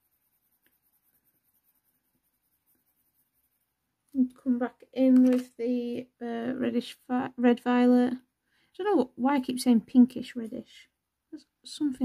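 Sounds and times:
faint pencil scratching on paper: 0.0s - 4.6s.

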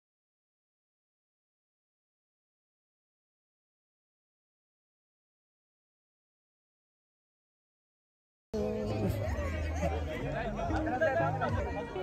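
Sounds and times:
music with low bass notes: 8.6s - 12.0s
people talking: 8.6s - 12.0s.

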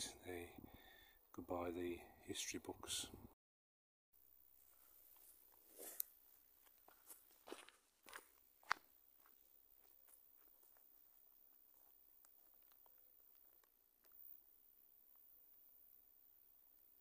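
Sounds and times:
footsteps crunching on stony path: 4.8s - 14.2s.

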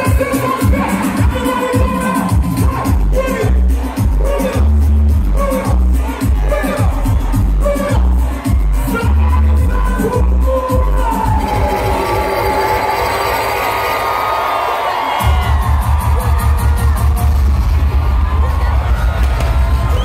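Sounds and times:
crowd voices and singing: 0.0s - 20.0s
heavy bass beat: 0.0s - 20.0s
loud dance music: 0.0s - 20.0s.

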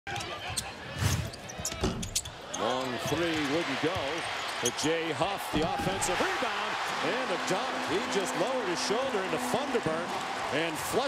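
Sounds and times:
sneakers squeaking: 0.1s - 4.9s
voices in arena: 0.1s - 11.0s.

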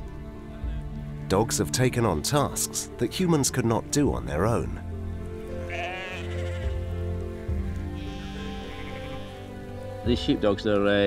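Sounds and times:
music of sustained notes: 0.0s - 11.0s
sheep bleating: 5.6s - 7.0s, 7.9s - 9.6s.

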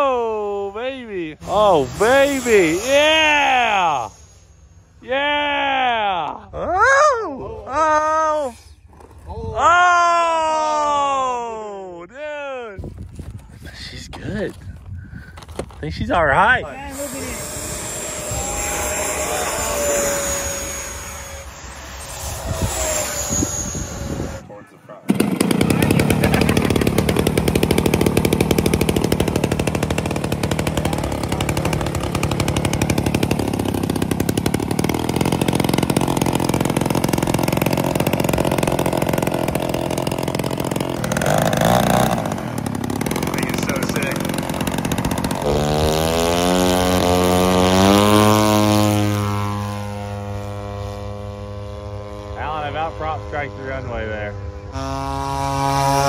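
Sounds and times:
model plane propeller engine: 0.0s - 5.5s, 16.3s - 56.0s
model jet whine flying past: 1.4s - 5.6s, 16.6s - 30.2s, 33.5s - 56.0s.

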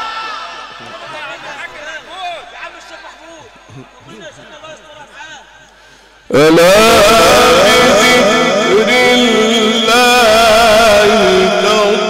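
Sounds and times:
man chanting melodic recitation: 6.3s - 12.0s.

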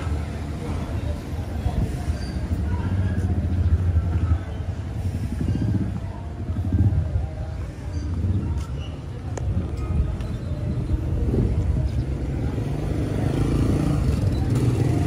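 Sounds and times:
motor traffic rumble: 0.0s - 15.0s.

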